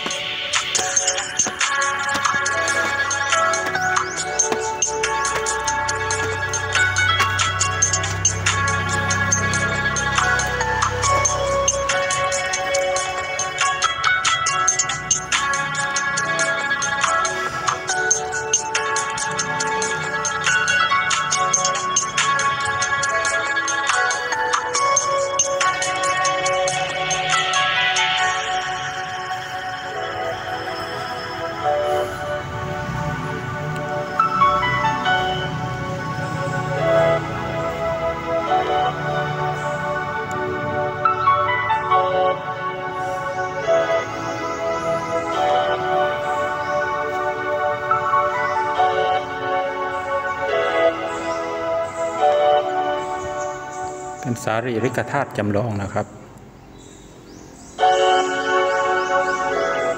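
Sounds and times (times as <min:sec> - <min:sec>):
slow sustained background music: 0:00.0 - 0:59.9.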